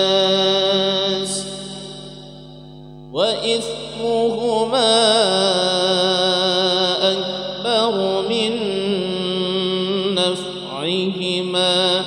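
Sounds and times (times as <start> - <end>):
man reciting melodically: 0.0 - 2.2, 3.1 - 12.0.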